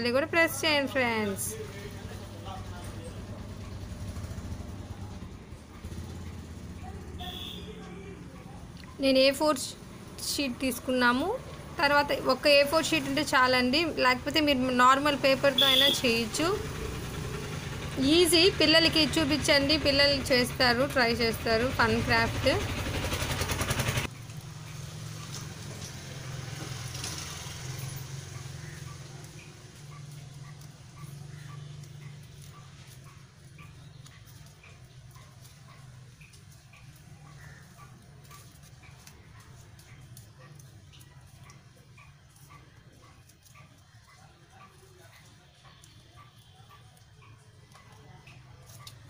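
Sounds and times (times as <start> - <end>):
loud rapid rattle: 21.1 - 24.1.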